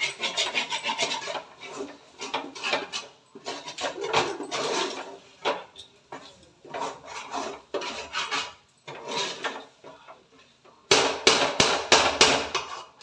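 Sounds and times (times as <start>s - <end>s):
metal ladle scraping in pot: 0.0s - 9.8s, 12.6s - 13.0s.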